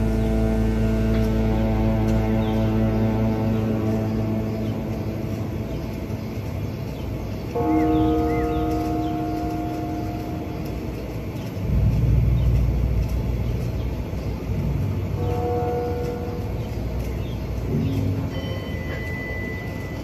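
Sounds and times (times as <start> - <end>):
wind rumbling on microphone: 0.0 - 18.9
distant horn tone: 0.0 - 20.0.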